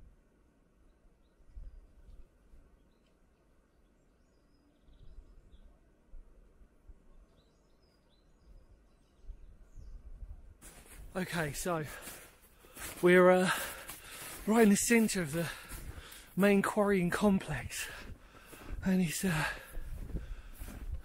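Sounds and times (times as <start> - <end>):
faint bird chirps: 0.8 - 6.2, 6.9 - 10.5.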